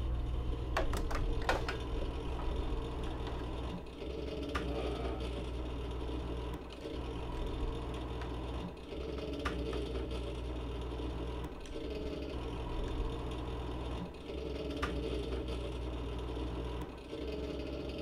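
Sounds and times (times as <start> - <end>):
low droning hum: 0.0 - 17.0.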